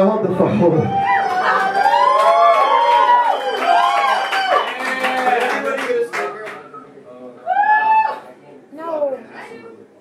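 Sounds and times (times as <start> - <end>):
people whooping: 0.9 - 5.3, 7.4 - 8.3.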